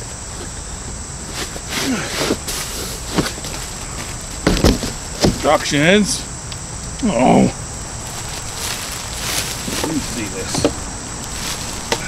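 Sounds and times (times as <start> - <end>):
cardboard rustling and scraping: 1.3 - 5.6, 8.1 - 12.0
cardboard knocks: 4.4 - 5.5, 9.6 - 10.8.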